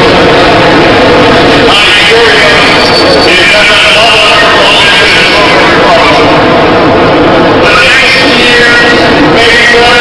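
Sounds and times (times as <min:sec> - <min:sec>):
dense noisy haze: 0:00.0 - 0:10.0
man speaking over public address: 0:01.6 - 0:06.8, 0:07.6 - 0:10.0.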